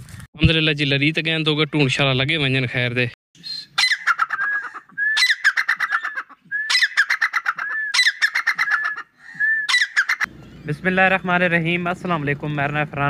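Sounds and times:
partridge calling: 0:03.4 - 0:10.8.

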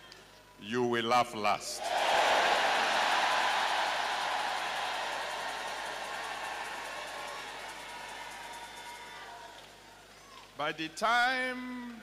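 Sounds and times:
crowd cheering and shouting: 0:01.8 - 0:09.6
crowd clapping: 0:01.8 - 0:09.8.

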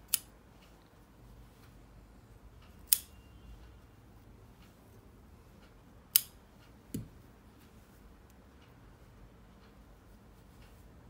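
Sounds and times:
scissor blades clicking: 0:00.0 - 0:00.3, 0:02.8 - 0:03.1
scissors snipping yarn: 0:00.0 - 0:00.4, 0:02.7 - 0:03.2, 0:06.1 - 0:07.2.

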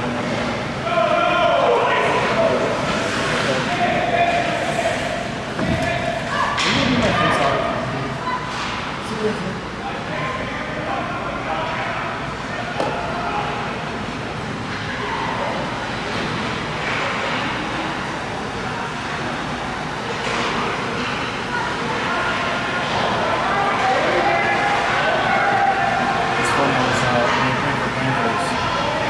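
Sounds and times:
shouting and chatter: 0:00.0 - 0:29.0.

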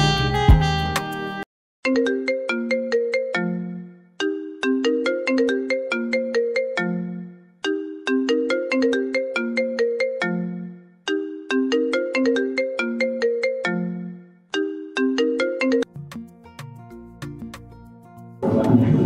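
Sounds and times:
phone ringtone tune: 0:01.8 - 0:15.9.

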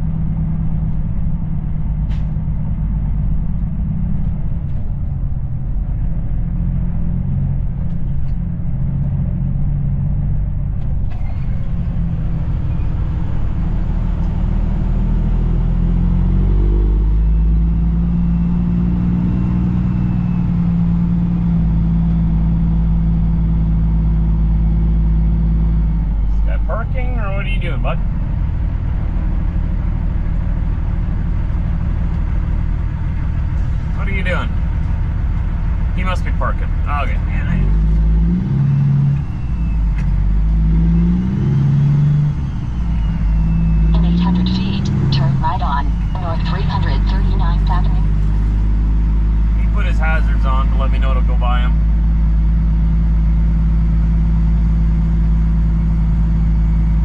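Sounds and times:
diesel truck engine running: 0:00.0 - 0:57.0.

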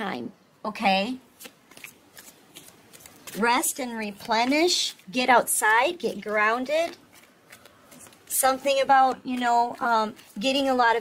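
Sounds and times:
cards being shuffled: 0:01.3 - 0:11.0.

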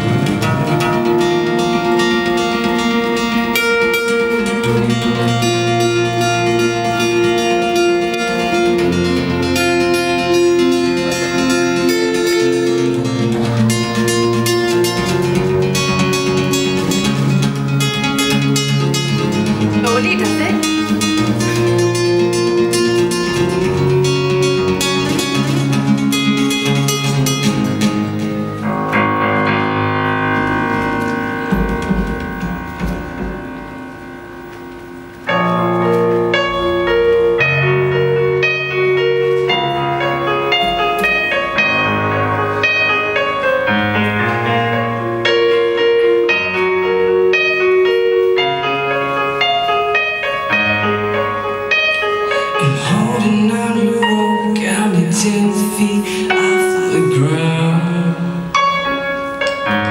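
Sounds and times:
acoustic guitar playing: 0:00.0 - 0:59.9.

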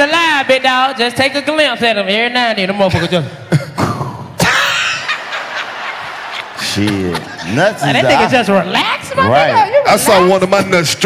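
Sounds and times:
audience laughter: 0:04.4 - 0:08.7.

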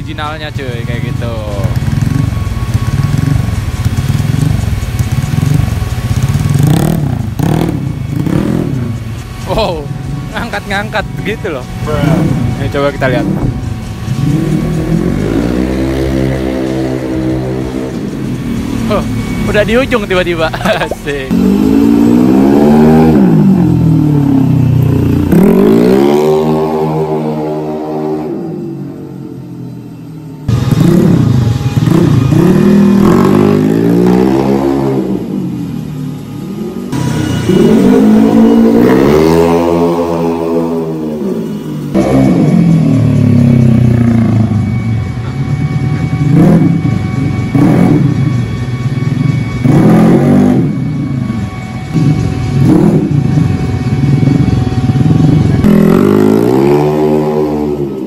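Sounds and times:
scooter engine revving hard: 0:01.2 - 0:09.0, 0:14.1 - 0:19.5, 0:20.6 - 0:29.0, 0:30.5 - 0:35.8, 0:36.7 - 0:48.9, 0:49.6 - 0:50.8, 0:51.9 - 0:58.0.

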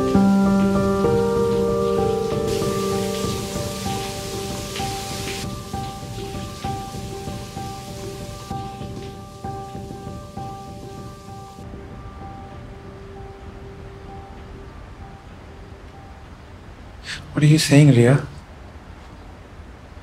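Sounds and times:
slow sustained background music: 0:00.0 - 0:17.7
steady hiss: 0:00.0 - 0:20.0.

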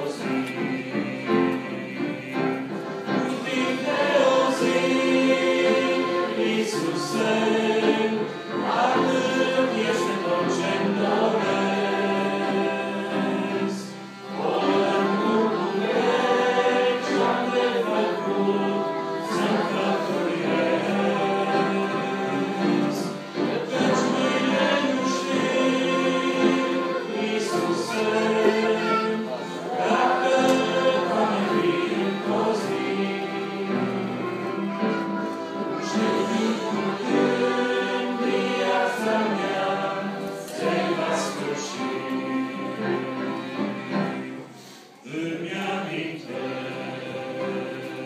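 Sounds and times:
congregation singing: 0:00.0 - 0:48.0.

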